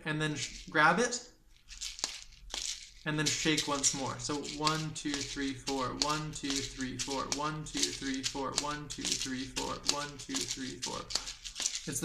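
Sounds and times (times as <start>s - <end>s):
seed shakers clicking rhythmically: 0.2s - 0.8s, 1.5s - 12.0s.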